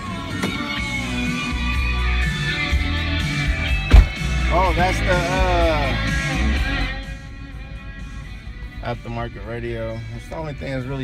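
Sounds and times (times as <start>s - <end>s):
music with guitar and heavy bass: 0.0s - 11.0s
sharp thump: 3.9s - 4.3s.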